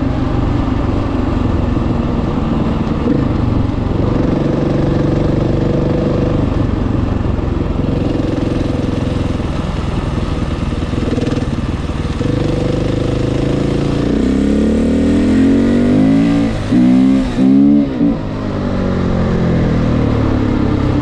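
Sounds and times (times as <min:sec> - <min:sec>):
motorcycle engine riding: 0:00.0 - 0:21.0.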